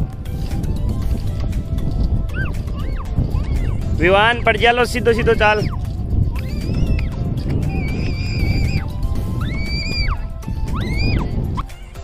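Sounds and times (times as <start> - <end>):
steady low rumble: 0.0 - 11.7
whistle-like sliding melody: 2.3 - 3.9, 5.3 - 11.8.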